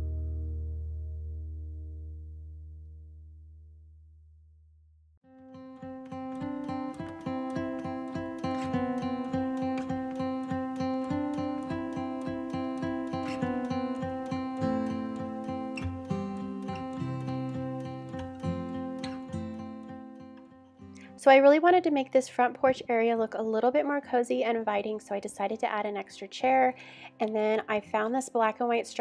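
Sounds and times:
acoustic guitar piece: 0.0 - 2.1, 5.2 - 29.0.

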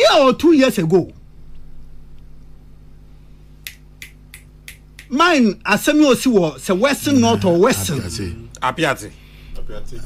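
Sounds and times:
low electrical hum: 0.0 - 10.0
sharp click: 3.6 - 5.1.

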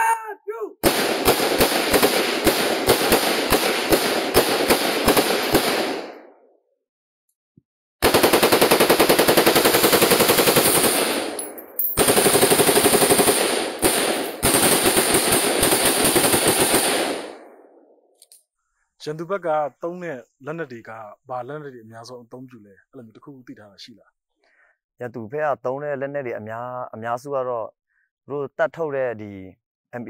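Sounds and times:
automatic gunfire: 0.8 - 6.2, 8.0 - 17.6.

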